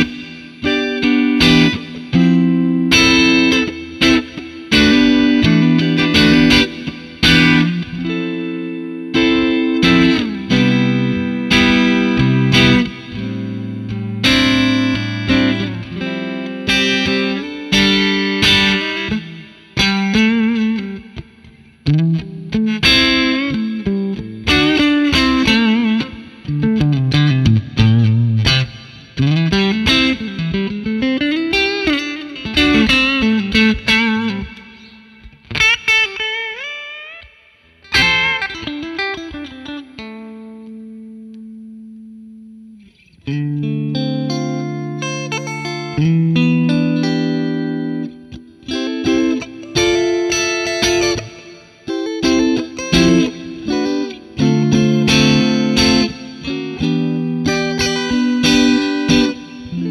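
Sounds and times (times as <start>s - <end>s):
overdriven electric guitar: 0.0s - 59.9s.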